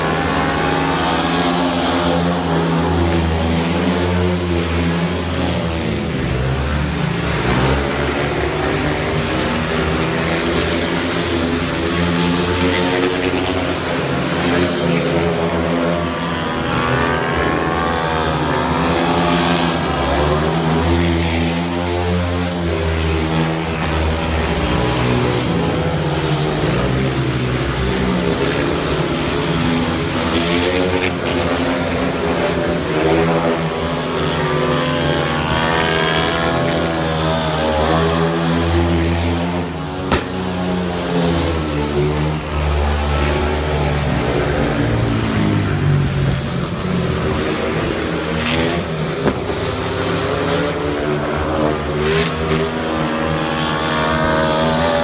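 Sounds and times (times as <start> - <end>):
motorcycles racing: 0.0 - 55.0.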